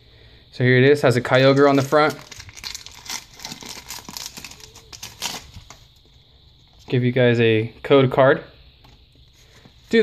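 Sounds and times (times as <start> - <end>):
foil wrapper crinkling and tearing: 1.4 - 6.0.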